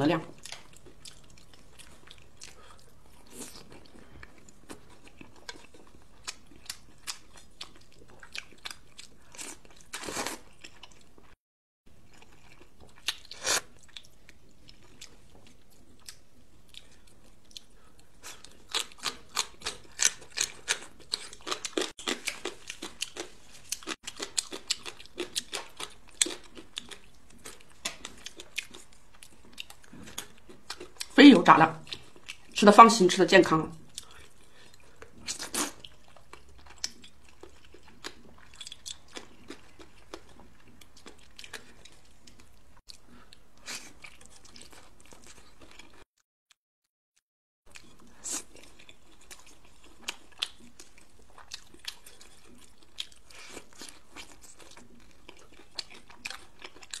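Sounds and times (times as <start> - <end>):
wet chewing and crunching: 0.3 - 11.4, 12.0 - 32.7, 33.8 - 46.1, 47.7 - 57.0.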